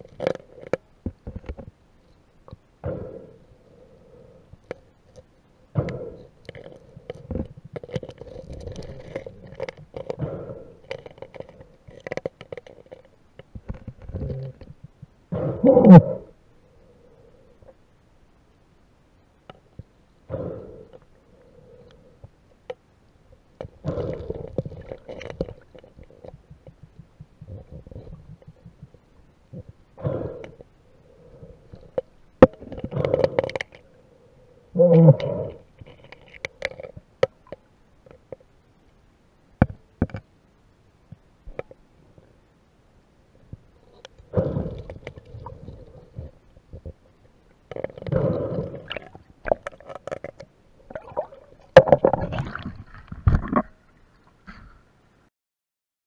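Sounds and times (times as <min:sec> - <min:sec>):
small clicks and knocks: 0:39.6 - 0:40.3
water splashing and sloshing: 0:47.8 - 0:54.5.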